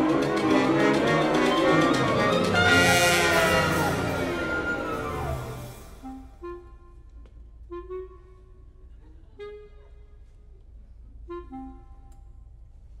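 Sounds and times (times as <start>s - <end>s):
full orchestra chord: 0.0s - 6.4s
quiet woodwind notes: 0.0s - 12.9s.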